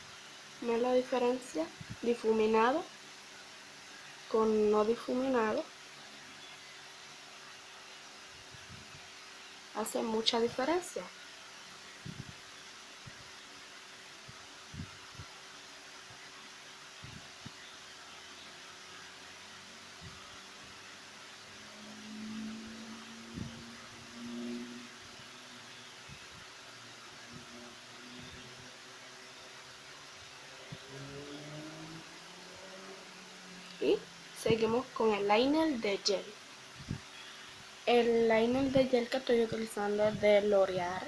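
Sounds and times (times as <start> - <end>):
faint low hum: 0.0 - 41.0
room noise hiss: 0.0 - 41.0.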